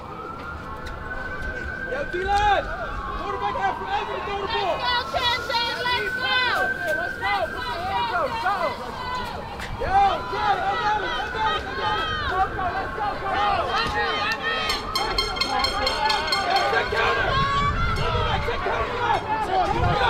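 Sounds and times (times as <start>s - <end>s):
crowd hubbub: 0.0s - 20.0s
people shouting and calling out: 1.9s - 20.0s.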